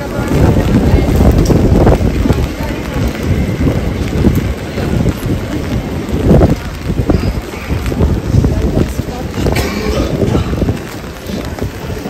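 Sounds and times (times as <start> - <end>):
rain on wet street: 0.0 - 12.0
wind rumbling on microphone: 0.0 - 12.0.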